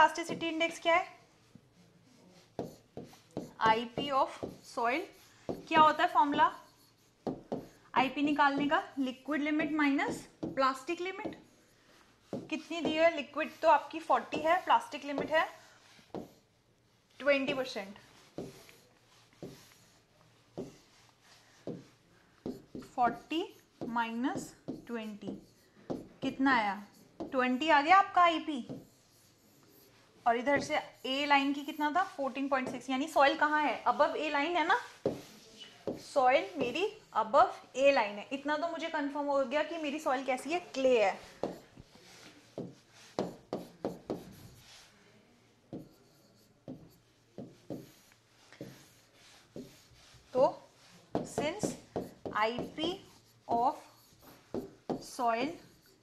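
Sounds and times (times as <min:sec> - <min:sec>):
pen strokes on whiteboard screen: 0:00.0 - 0:37.6, 0:39.6 - 0:56.0.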